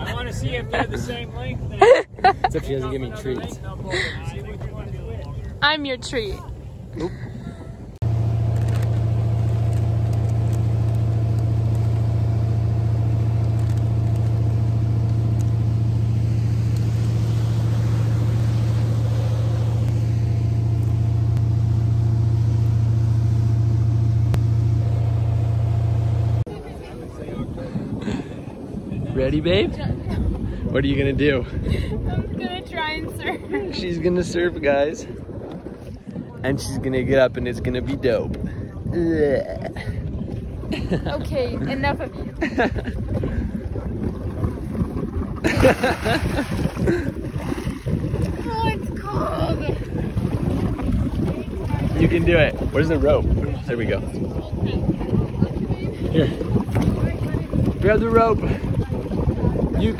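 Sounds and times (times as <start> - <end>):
boat engine droning: 0.0 - 59.9
wind rumble on microphone: 0.0 - 59.9
person splashing into water: 44.0 - 48.5.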